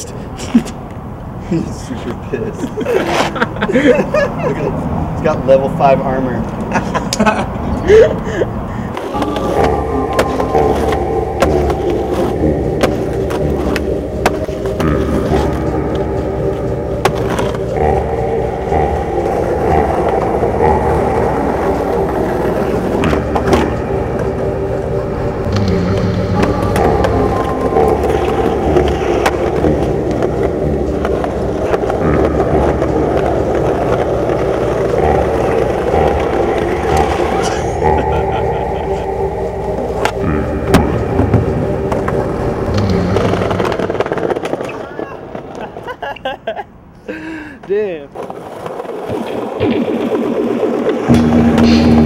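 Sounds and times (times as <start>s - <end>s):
skateboard wheels rolling on concrete: 0.1s - 37.6s, 39.6s - 52.0s.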